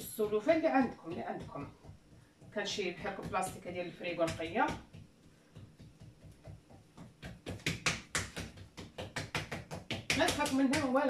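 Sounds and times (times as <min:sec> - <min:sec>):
hands tapping dough on counter: 0:00.2 - 0:11.0.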